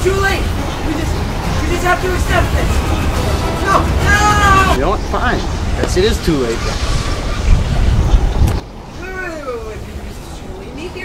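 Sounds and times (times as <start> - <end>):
loud low rumbling rush: 0.0 - 10.9.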